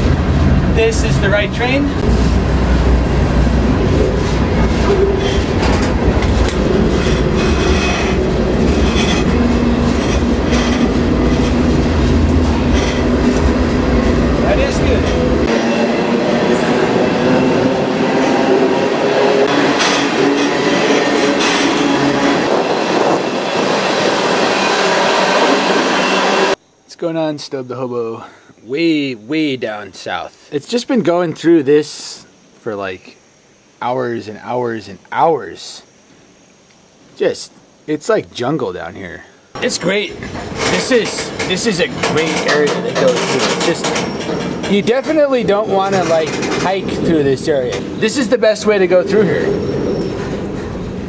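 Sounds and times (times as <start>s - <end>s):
train wheels rattling on rail: 0.0s - 26.6s, 39.6s - 51.0s
metallic clanks: 39.6s - 47.0s.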